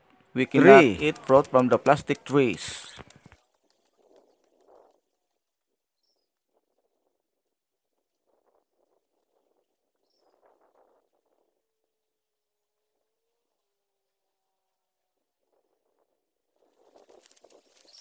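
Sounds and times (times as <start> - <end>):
faint rustling of ferns and soil: 16.5 - 18.0.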